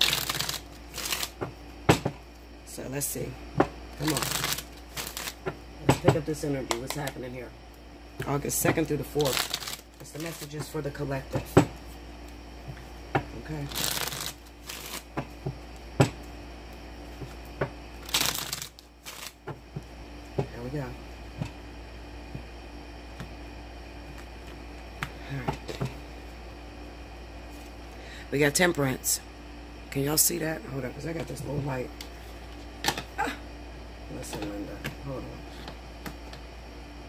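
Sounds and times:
cards rustling while shuffled: 0:00.0 - 0:01.4, 0:04.0 - 0:05.4, 0:08.5 - 0:10.8, 0:13.6 - 0:15.8, 0:18.0 - 0:19.4
low room hum: 0:00.0 - 0:37.0.

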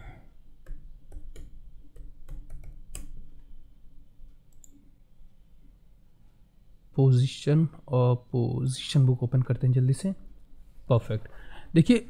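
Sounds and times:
keyboard and mouse clicks: 0:00.6 - 0:03.5, 0:04.5 - 0:04.8.

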